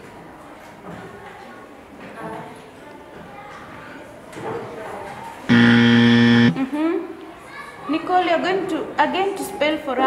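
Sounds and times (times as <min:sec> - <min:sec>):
low buzzer tone: 0:05.5 - 0:06.6.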